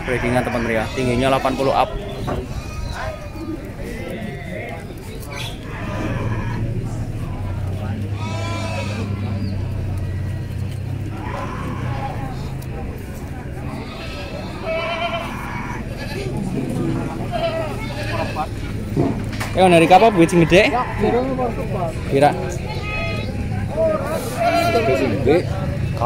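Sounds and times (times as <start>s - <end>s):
goats bleating: 0.0s - 26.0s
people chattering: 0.0s - 26.0s.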